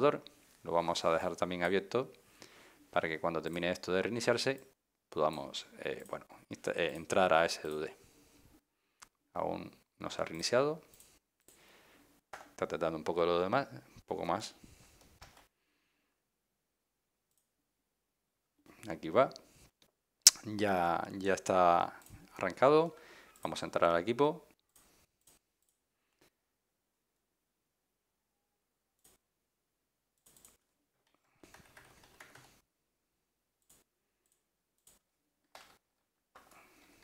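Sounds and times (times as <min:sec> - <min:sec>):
man speaking: 0:00.0 - 0:02.1, 0:02.9 - 0:08.0, 0:20.3 - 0:24.5
keyboard typing: 0:30.2 - 0:30.6, 0:31.4 - 0:32.6.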